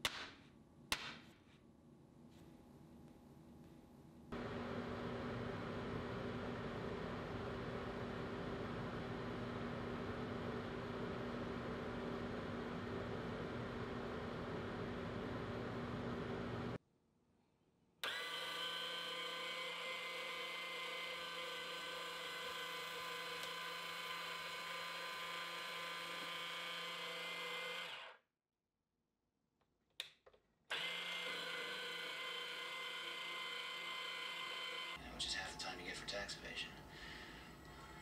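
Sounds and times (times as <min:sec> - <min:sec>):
small motor whining: 0:18.0 - 0:28.2, 0:30.7 - 0:35.0.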